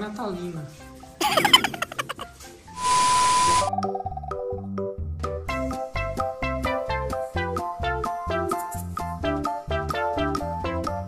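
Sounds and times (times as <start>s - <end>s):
light keyboard music: 0.0s - 11.0s
steady high beep: 2.8s - 3.7s.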